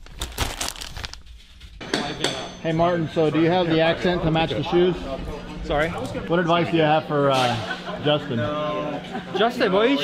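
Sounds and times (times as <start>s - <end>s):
plastic bottle crinkling: 0.0s - 1.3s.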